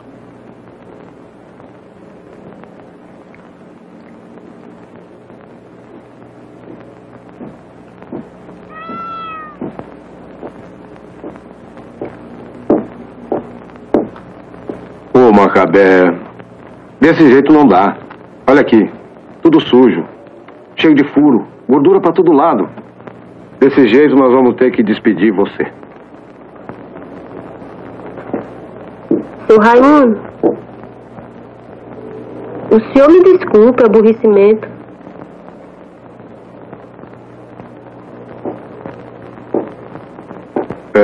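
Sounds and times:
film soundtrack hiss: 0:00.0 - 0:41.0
steady hum: 0:00.0 - 0:41.0
short high meow-like cry: 0:08.7 - 0:09.7.

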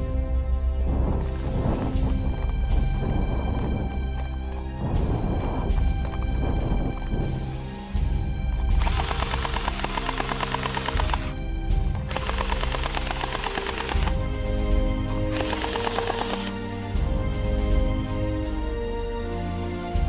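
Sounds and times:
background music: 0:00.0 - 0:20.0
gel blaster full-auto bursts: 0:08.8 - 0:11.3, 0:12.0 - 0:14.2, 0:15.3 - 0:16.5.

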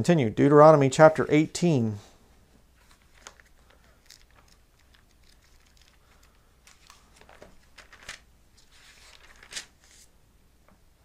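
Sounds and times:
paper pages rustling: 0:02.8 - 0:10.1.

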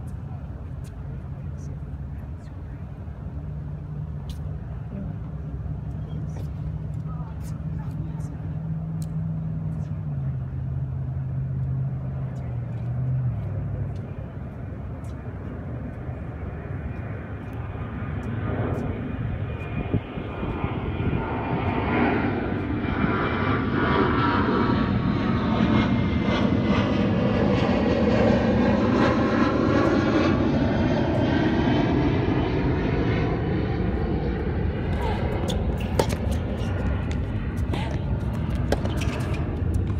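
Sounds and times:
aircraft engine passing overhead: 0:00.0 - 0:39.9
tennis balls struck by racquets: 0:34.8 - 0:39.9.

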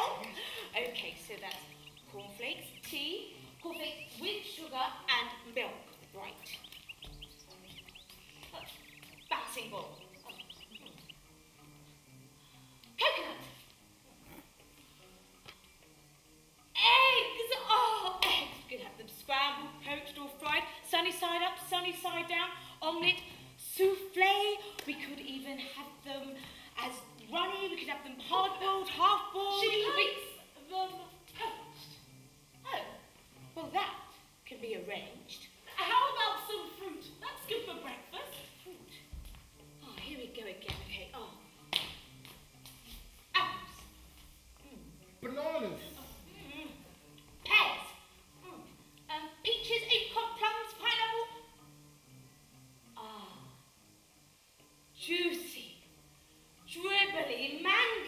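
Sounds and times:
swooping vocal calls: 0:01.0 - 0:04.6, 0:06.2 - 0:11.3
faint ticks: 0:05.9 - 0:11.2
finger snap: 0:41.7 - 0:42.9.

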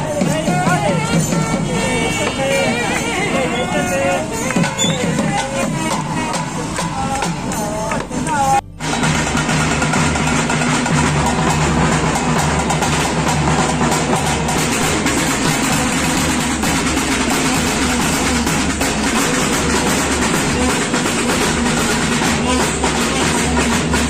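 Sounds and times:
barrel drums drumming: 0:00.0 - 0:24.0
cymbals clashing: 0:00.0 - 0:24.0.

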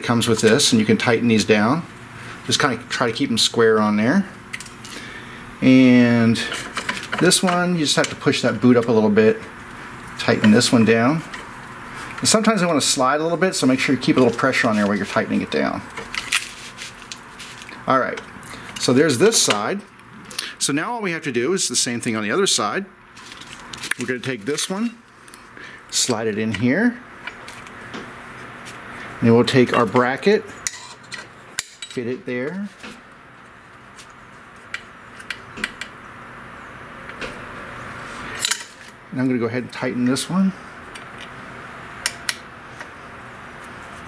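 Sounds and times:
faint rubbing and handling: 0:13.6 - 0:17.8.

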